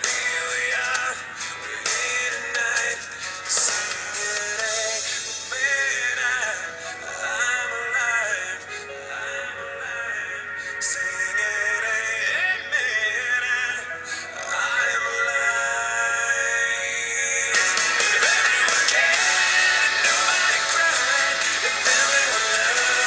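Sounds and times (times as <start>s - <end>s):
song with sung vocals: 0.0s - 23.0s.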